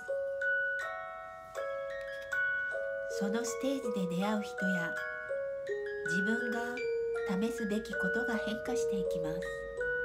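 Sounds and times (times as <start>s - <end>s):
gentle bell-like music: 0.0s - 10.0s.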